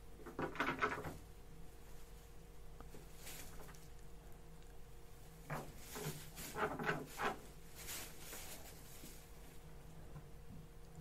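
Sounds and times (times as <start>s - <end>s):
pet scratching and rustling: 1.8s - 4.0s, 5.4s - 9.6s.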